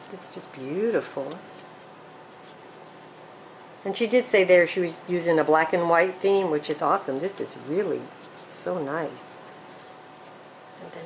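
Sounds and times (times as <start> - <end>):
woman speaking: 0.0 - 1.5, 3.8 - 9.4, 10.8 - 11.0.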